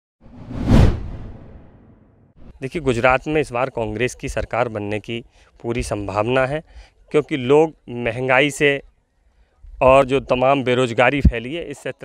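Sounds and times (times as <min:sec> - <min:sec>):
whoosh sound effect: 0:00.2 - 0:02.6
deep rumble: 0:00.3 - 0:02.2.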